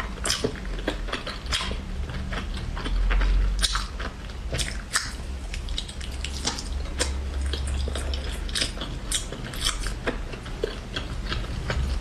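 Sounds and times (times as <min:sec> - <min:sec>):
wet chewing squelches: 0:00.0 - 0:12.0.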